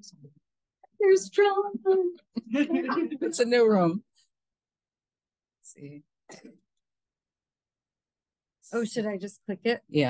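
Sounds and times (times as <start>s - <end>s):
person clearing throat: 6.3s - 6.7s.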